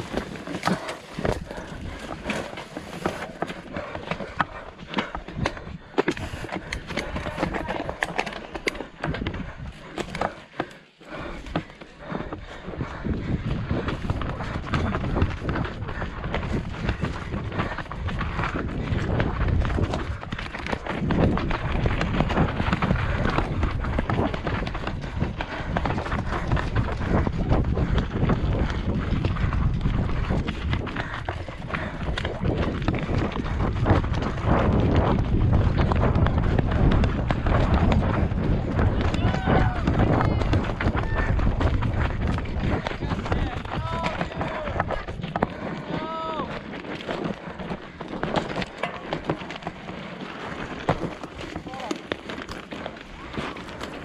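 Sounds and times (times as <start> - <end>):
wind on microphone: 0.0 - 10.3, 11.1 - 49.4
bike rattling and clicking: 0.0 - 54.0
bike tyres on loose ground: 0.0 - 54.0.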